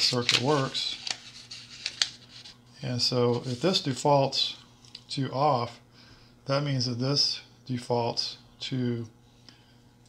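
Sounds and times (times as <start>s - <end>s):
paper sliding and crinkling: 0.0s - 2.6s, 3.2s - 4.0s
sharp paper ticks: 0.1s - 2.4s.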